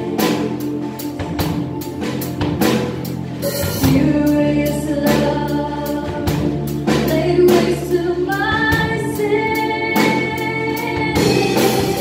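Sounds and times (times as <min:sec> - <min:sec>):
woman singing lead: 0:00.0 - 0:01.9, 0:03.6 - 0:12.0
drum kit beat: 0:00.0 - 0:12.0
guitar: 0:00.0 - 0:12.0
keyboard: 0:00.0 - 0:12.0.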